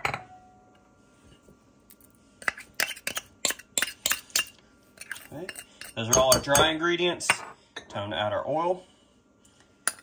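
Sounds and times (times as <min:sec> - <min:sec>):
metal spoon clinking on bowls: 0:02.4 - 0:08.0.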